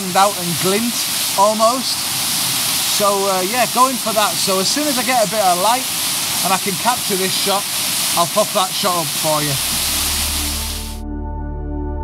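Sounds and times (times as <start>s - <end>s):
small waterfall rushing: 0.0s - 11.0s.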